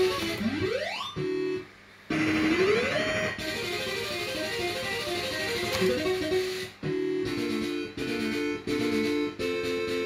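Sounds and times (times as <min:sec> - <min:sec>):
fruit machine sound effects: 0:00.0 - 0:10.0
repeating machine tune: 0:00.0 - 0:10.0.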